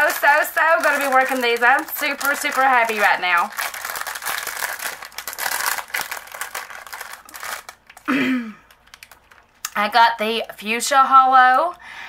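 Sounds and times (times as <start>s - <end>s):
plastic packaging crinkling: 0.0s - 9.7s.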